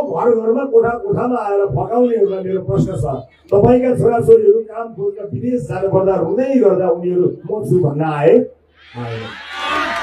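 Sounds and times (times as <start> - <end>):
man speaking into a microphone: 0.0 - 9.4.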